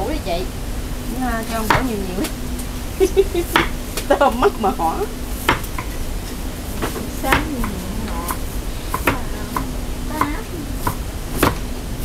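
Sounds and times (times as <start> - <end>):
faint steady hum: 0.0 - 12.0
cleaver chopping on wooden board: 5.4 - 5.9, 8.3 - 9.2, 10.8 - 11.6.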